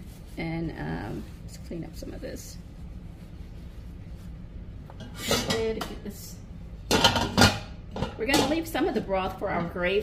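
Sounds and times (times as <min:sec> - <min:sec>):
utensils and pans clattering: 0:05.0 - 0:06.0, 0:06.9 - 0:08.8.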